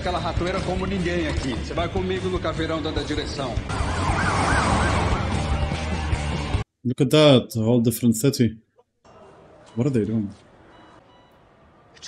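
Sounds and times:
police siren yelping: 0:03.7 - 0:05.7.

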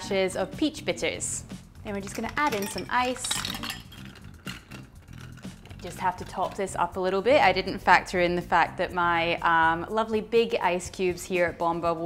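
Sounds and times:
soft background music: 0:00.0 - 0:12.0
ice clinking against glass: 0:02.0 - 0:06.6.

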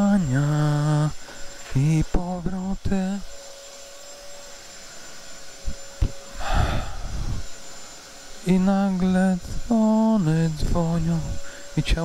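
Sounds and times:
man singing into microphone: 0:00.0 - 0:03.3, 0:08.5 - 0:12.0
faint steady tone: 0:00.0 - 0:12.0
breath rushing into microphone: 0:06.4 - 0:07.5.

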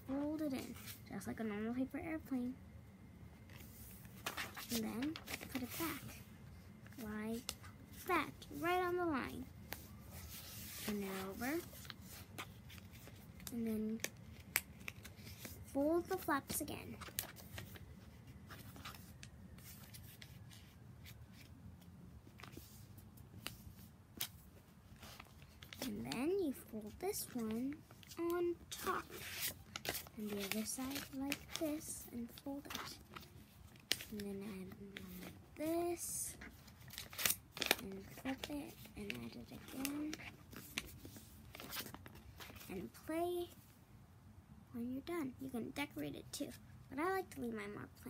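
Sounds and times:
child speaking: 0:00.0 - 0:02.6, 0:04.6 - 0:06.3, 0:06.9 - 0:09.5, 0:10.8 - 0:11.8, 0:13.5 - 0:14.1, 0:15.6 - 0:17.1, 0:25.8 - 0:29.3, 0:30.1 - 0:33.2, 0:34.0 - 0:36.5, 0:37.7 - 0:40.3, 0:42.6 - 0:43.6, 0:44.7 - 0:48.0
low room hum: 0:00.0 - 0:48.0
paper rustling and crinkling: 0:03.5 - 0:06.2, 0:09.6 - 0:21.5, 0:22.2 - 0:35.4, 0:36.3 - 0:43.0
paper crinkling and tapping: 0:27.2 - 0:34.2, 0:36.4 - 0:42.7.

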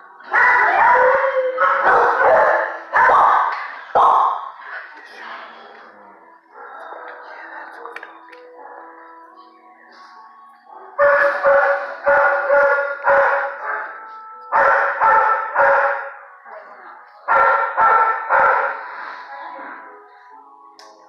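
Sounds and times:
dog barking loudly: 0:00.4 - 0:04.5, 0:11.0 - 0:13.8, 0:14.6 - 0:16.1, 0:17.3 - 0:18.8.

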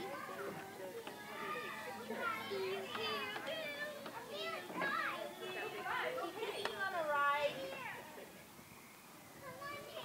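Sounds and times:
young children chattering: 0:00.0 - 0:10.0.

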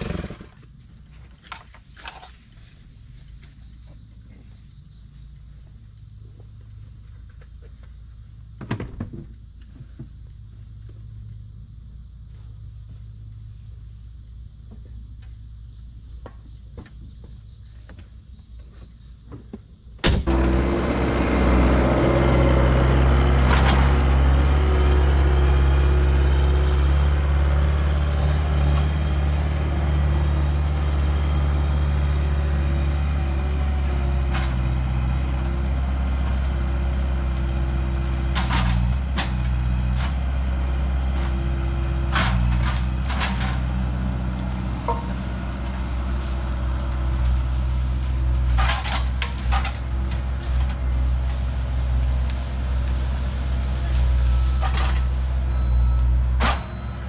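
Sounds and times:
loader diesel engine running: 0:00.0 - 0:16.1, 0:20.1 - 0:57.0
insects buzzing: 0:00.0 - 0:57.0.

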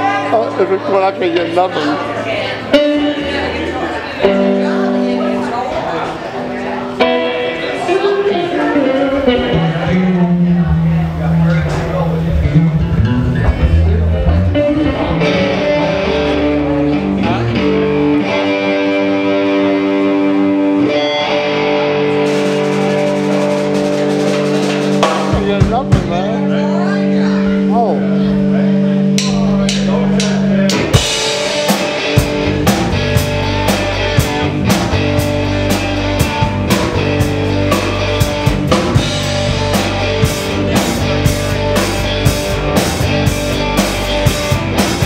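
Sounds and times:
guitar sustained chords: 0:00.0 - 0:45.0
drum kit hits: 0:22.2 - 0:26.4, 0:29.1 - 0:45.0.

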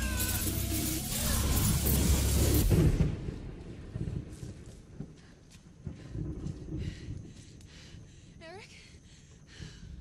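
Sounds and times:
low rumble: 0:00.0 - 0:08.4.

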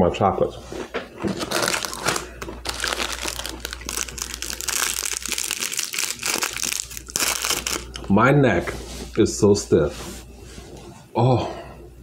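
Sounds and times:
plastic packaging crinkling: 0:01.2 - 0:08.1.

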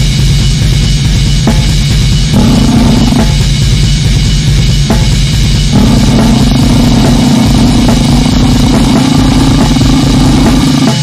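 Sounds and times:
extreme metal music with drums: 0:00.0 - 0:11.0.

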